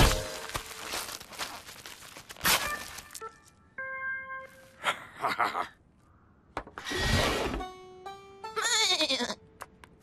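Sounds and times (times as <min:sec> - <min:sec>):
cartoon sheep bleat: 0:08.6 - 0:09.4.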